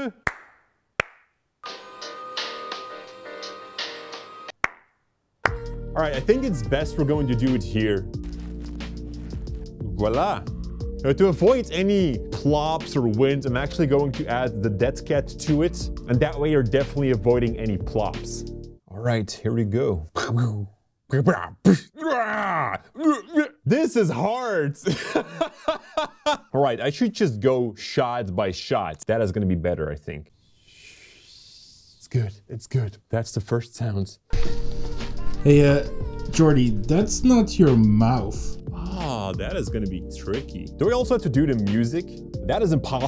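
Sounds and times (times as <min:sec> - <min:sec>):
hand clap with room echo: 0:00.2 - 0:01.4, 0:04.6 - 0:05.6
music with repeated beat: 0:05.5 - 0:18.3, 0:34.4 - 0:43.0.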